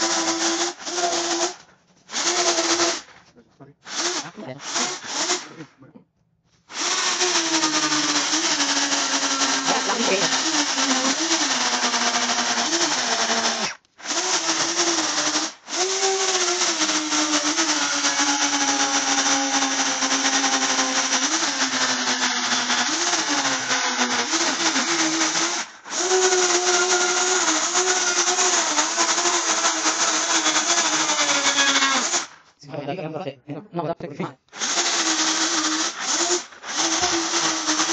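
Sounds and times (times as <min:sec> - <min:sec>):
chainsaw cutting wood: 0:00.0 - 0:03.2, 0:03.8 - 0:05.6, 0:06.7 - 0:32.4, 0:34.5 - 0:37.9.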